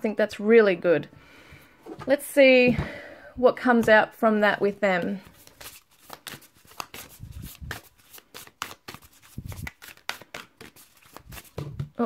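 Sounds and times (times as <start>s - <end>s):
cards being shuffled: 4.9s - 12.0s.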